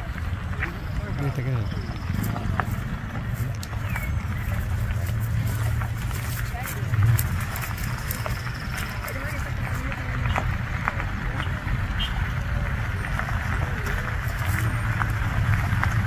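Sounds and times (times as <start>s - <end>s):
people's voices: 0.0s - 16.0s
trucks rumbling slowly: 0.0s - 16.0s.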